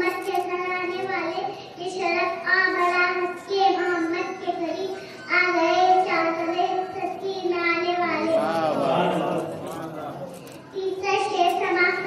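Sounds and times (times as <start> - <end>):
girl singing devotional chant: 0.0 - 8.4, 10.7 - 12.0.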